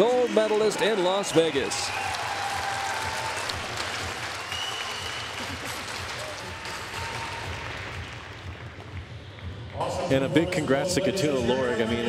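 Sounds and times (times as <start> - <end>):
audience applauding: 0.0 - 9.1.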